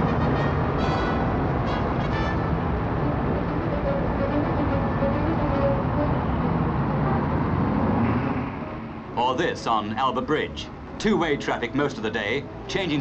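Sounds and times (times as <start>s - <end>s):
bus engine passing: 0.0s - 13.0s
traffic rumble: 0.0s - 13.0s.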